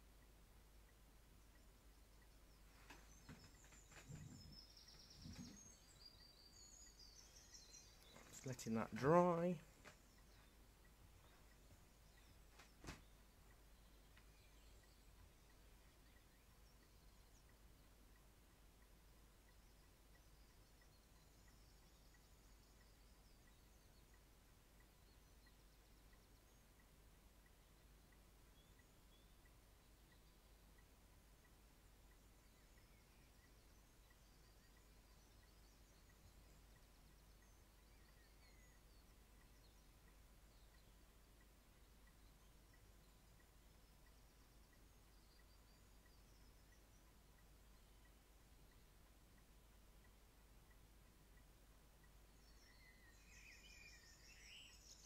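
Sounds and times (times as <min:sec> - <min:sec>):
faint high chirps: 0:00.0 - 0:55.0.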